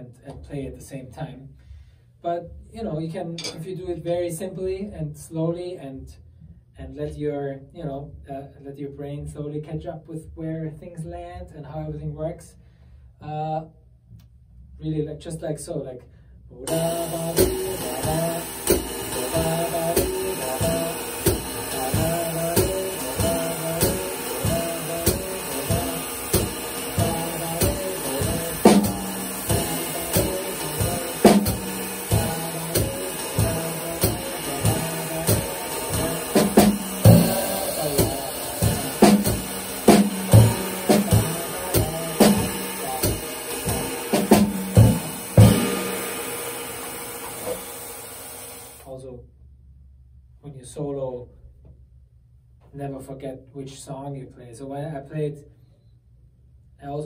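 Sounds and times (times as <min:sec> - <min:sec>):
jazz drum kit playing: 0:16.7 - 0:48.4
person singing wordless melody: 0:19.1 - 0:39.7, 0:40.3 - 0:43.0.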